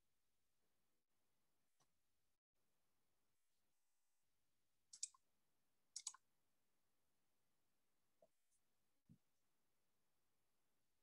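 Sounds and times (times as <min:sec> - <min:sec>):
sharp computer clicks: 0:04.9 - 0:05.2, 0:06.0 - 0:06.2.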